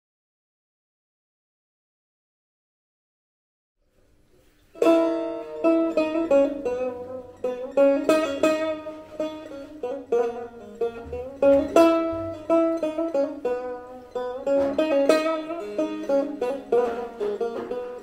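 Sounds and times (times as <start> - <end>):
plucked lute: 4.4 - 18.0.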